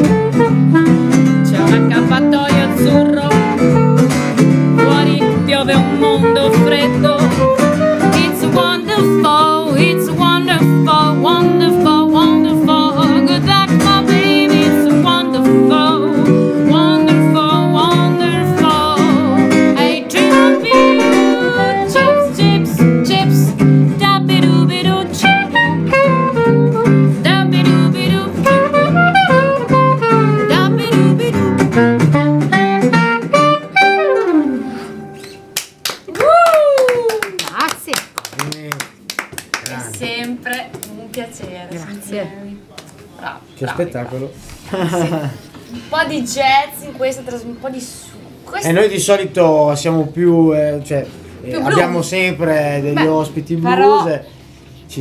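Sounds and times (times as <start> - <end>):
acoustic guitar strumming chords: 0.0 - 35.6
soprano saxophone melody: 0.0 - 35.6.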